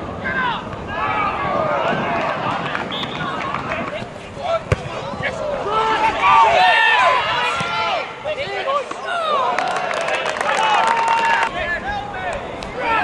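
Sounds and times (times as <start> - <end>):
players and spectators shouting: 0.2 - 13.0
football kicked thud: 4.6 - 5.0.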